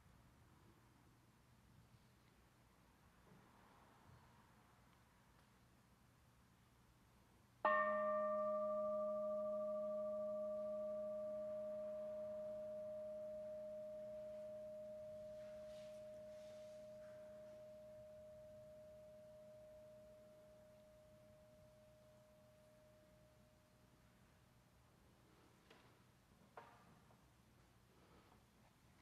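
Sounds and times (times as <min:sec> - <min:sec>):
singing bowl struck and ringing: 0:07.7 - 0:23.4.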